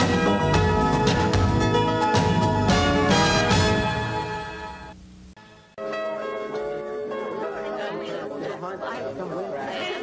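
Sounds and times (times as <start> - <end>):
voices chattering: 6.1 - 10.0.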